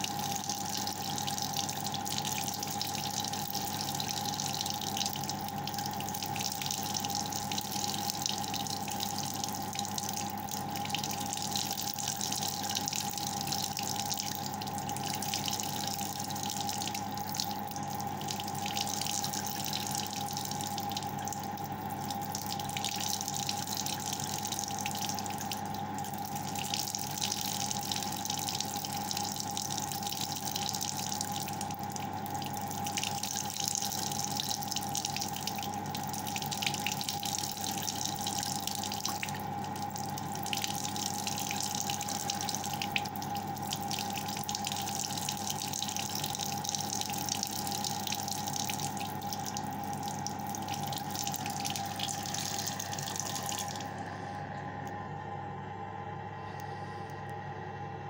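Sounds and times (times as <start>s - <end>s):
water running from a tap: 0.0s - 53.9s
water splashes and drips: 0.0s - 53.9s
steady hum: 0.0s - 58.0s.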